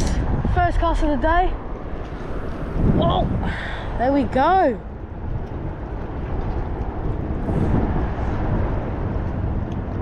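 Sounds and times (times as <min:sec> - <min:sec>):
road traffic hiss: 0:00.0 - 0:04.3, 0:04.9 - 0:10.0
wind rumbling on microphone: 0:00.0 - 0:10.0.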